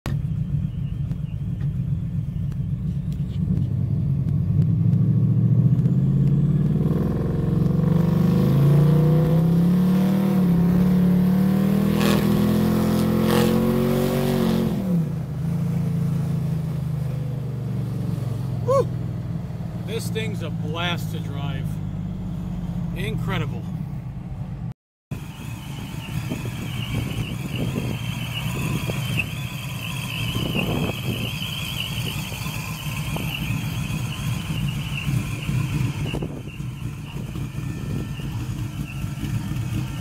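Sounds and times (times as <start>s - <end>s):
car engine accelerating: 0.1s - 40.0s.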